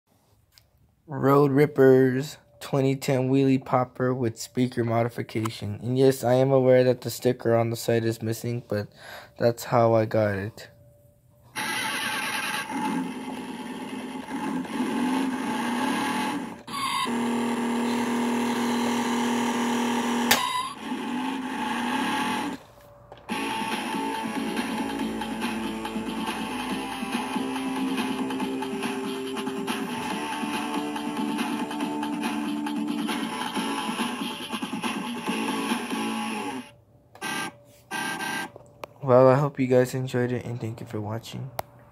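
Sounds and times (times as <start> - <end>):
toy car electronic sound effects: 11.5 - 22.6, 23.3 - 38.5.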